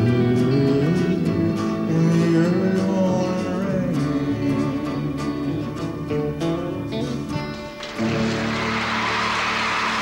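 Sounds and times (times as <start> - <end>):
audience applause: 7.8 - 10.0.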